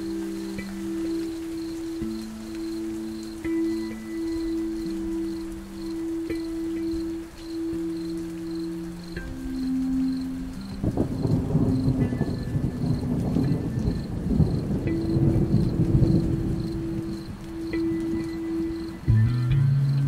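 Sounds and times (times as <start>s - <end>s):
rain: 0.0s - 20.0s
soft held music notes: 0.0s - 20.0s
thunder rumble: 0.0s - 20.0s.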